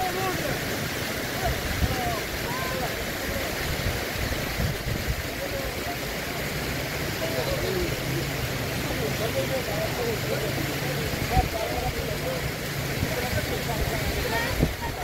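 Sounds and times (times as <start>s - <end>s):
fast river rushing: 0.0s - 15.0s
indistinct crowd voices: 0.0s - 15.0s.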